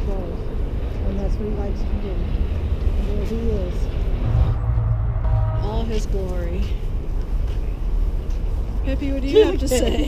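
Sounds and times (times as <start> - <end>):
low outdoor rumble: 0.0 - 10.0
woman speaking: 5.6 - 6.8, 8.8 - 10.0.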